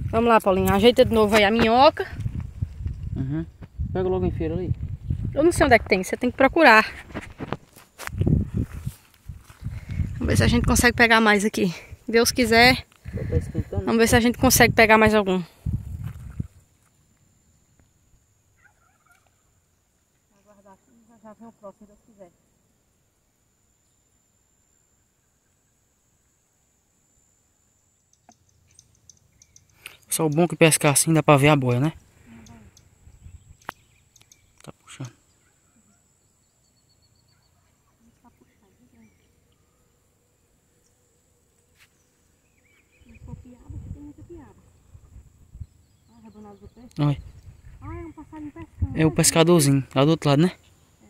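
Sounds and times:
faint distant calls: 17.4 - 22.9, 27.8 - 51.0.

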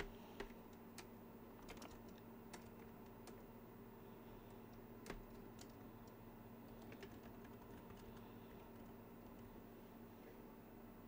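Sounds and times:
keyboard keystrokes: 0.0 - 3.5, 4.7 - 9.5
low steady hum: 0.0 - 11.0.

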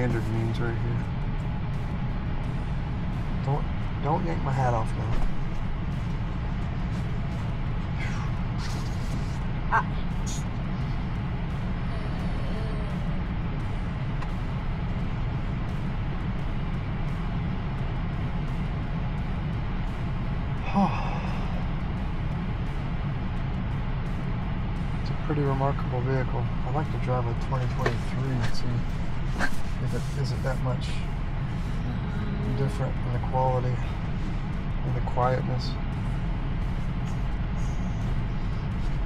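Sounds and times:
road and tyre rumble: 0.0 - 39.0.

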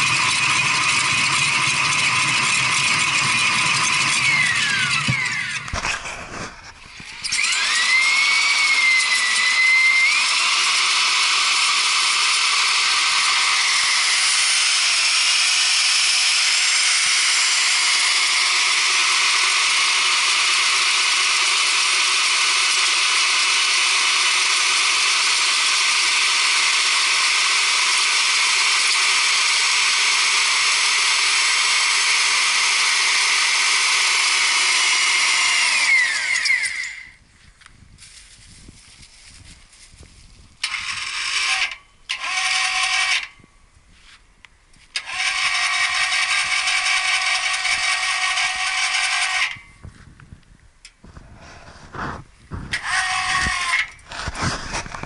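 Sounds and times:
electric auger motor whining: 0.0 - 37.2, 40.0 - 43.5, 44.8 - 55.0.

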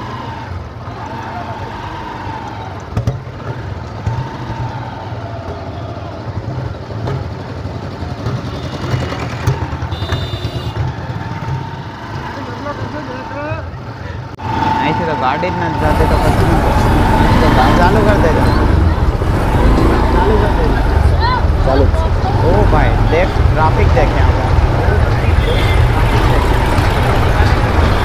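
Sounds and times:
motor scooter running: 0.6 - 13.6, 14.6 - 28.0
people's voices: 12.0 - 28.0.

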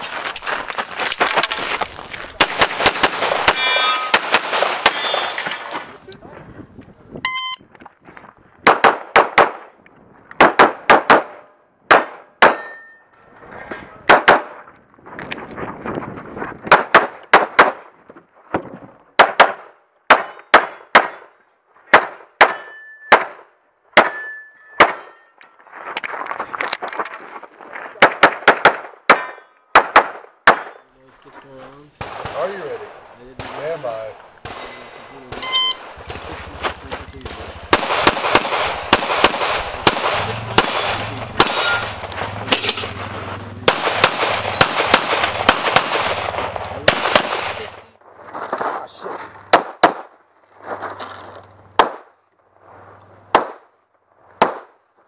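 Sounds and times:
rapid pistol fire: 2.4 - 5.0, 8.6 - 9.6, 37.3 - 41.8, 43.6 - 47.8
steel targets ringing: 3.5 - 4.2, 4.8 - 5.8, 24.1 - 25.4, 34.5 - 36.0, 39.8 - 43.0.

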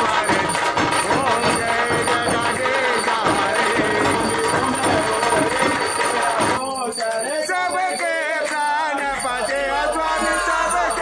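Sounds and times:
handheld bell ringing: 0.0 - 11.0
man singing: 0.0 - 11.0
voices singing: 0.0 - 11.0.

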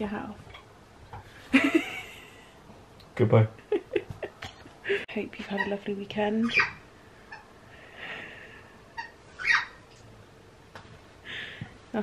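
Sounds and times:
pet animal squeaking: 5.4 - 7.5, 8.9 - 9.9.

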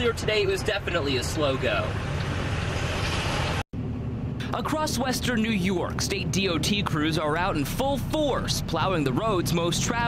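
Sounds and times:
truck engine idling: 1.9 - 10.0.

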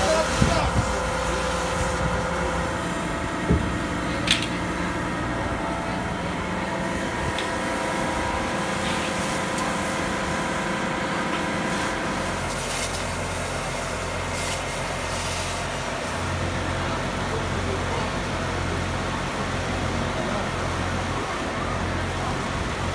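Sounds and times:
fire engine mechanical drone: 0.0 - 22.9.

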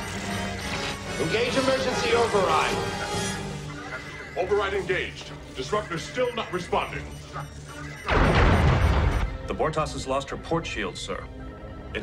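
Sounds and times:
explosive crash: 8.1 - 9.3.

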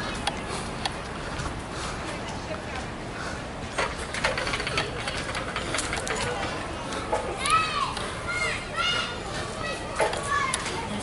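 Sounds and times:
outdoor background noise: 0.0 - 11.0
children calling out: 5.8 - 11.0.

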